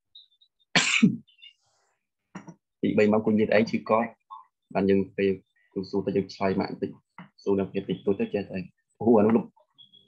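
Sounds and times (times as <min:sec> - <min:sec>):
person coughing: 0:00.8 - 0:01.2.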